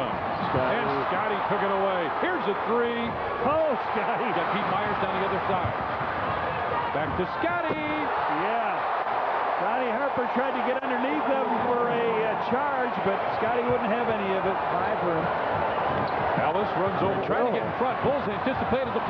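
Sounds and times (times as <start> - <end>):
arena crowd noise: 0.0 - 19.0.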